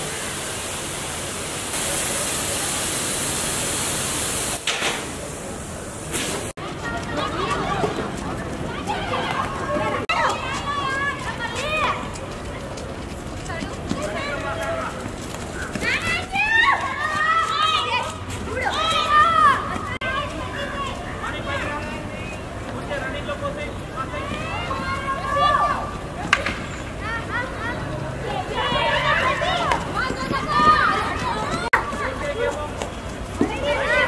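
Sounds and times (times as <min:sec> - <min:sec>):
players calling out: 0:13.4 - 0:34.0
young women shouting: 0:27.1 - 0:32.0.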